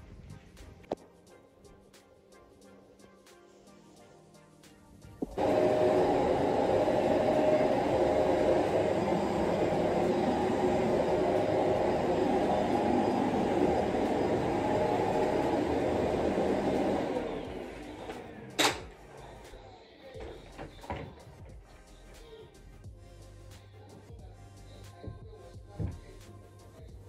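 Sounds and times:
vacuum cleaner motor whirring: 0:05.2 - 0:19.0.

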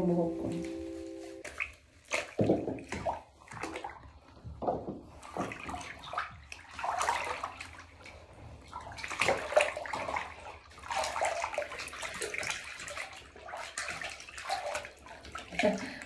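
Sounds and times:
bath water splashing: 0:00.0 - 0:16.0.

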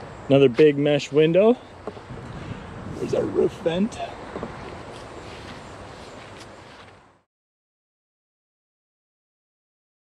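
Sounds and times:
outdoor background noise: 0:00.0 - 0:07.3.

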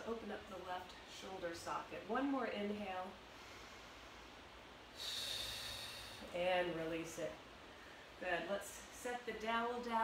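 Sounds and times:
woman's deep breath: 0:05.0 - 0:06.3.

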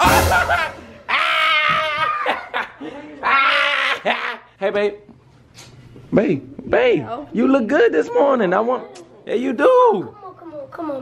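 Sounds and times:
high-pitched laughter: 0:00.0 - 0:04.5.

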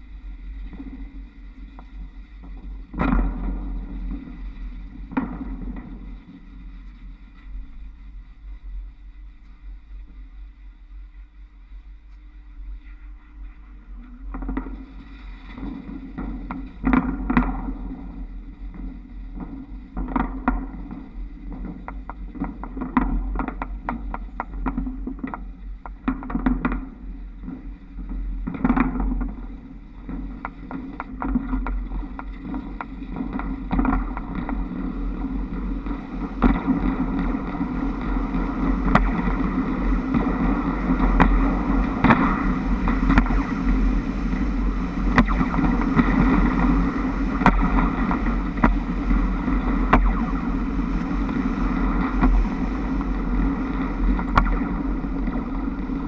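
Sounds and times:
wind on microphone: 0:00.0 - 0:56.0.

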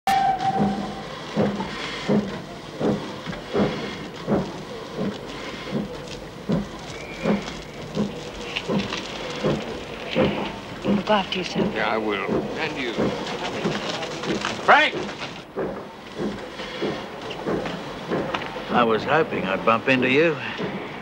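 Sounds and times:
brief steady tone: 0:00.1 - 0:01.2
steam hissing: 0:00.1 - 0:21.0
regular thumping: 0:00.6 - 0:20.9.

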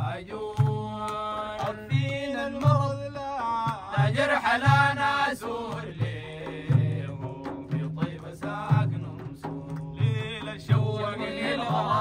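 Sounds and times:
men chanting: 0:00.0 - 0:12.0.

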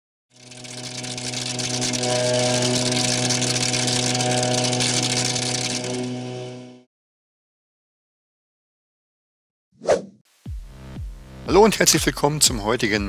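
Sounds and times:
synthesized droning hum: 0:00.4 - 0:06.9.

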